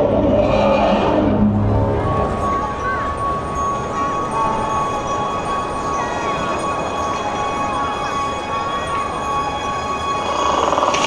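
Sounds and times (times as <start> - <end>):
drone of held tones: 0.8 - 11.0.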